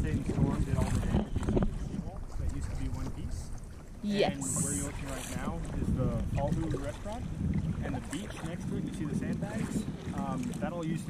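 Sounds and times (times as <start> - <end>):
wind rumbling on microphone: 0.0 - 11.0
faint talk: 2.0 - 7.2.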